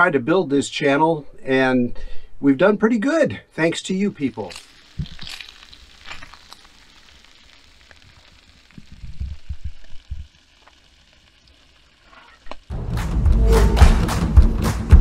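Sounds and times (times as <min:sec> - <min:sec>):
bacon sizzling in a pan: 0:03.6 - 0:12.7.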